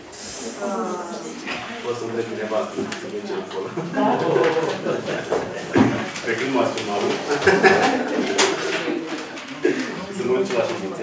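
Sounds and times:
paper sheets crackling: 6.0 - 11.0.

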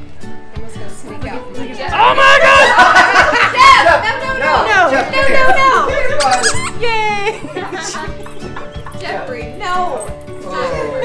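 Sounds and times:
background music: 0.0 - 11.0
dog toy squeaking: 6.2 - 6.8.

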